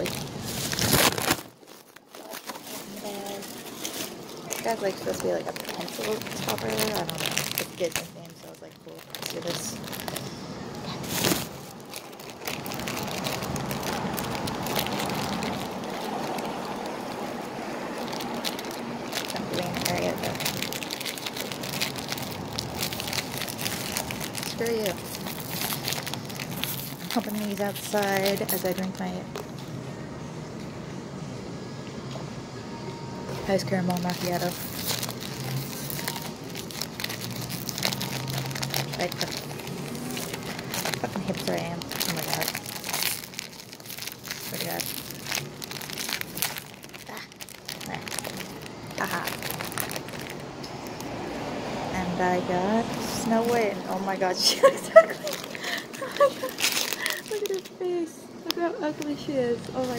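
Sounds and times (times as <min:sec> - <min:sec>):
plastic packaging crinkling: 0:00.0 - 0:29.7, 0:33.4 - 0:51.2, 0:53.0 - 0:59.9.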